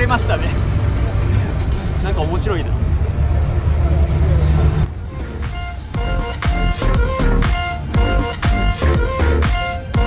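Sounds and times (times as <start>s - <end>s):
bus engine rumbling: 0.0s - 10.0s
music with a steady beat: 5.2s - 10.0s.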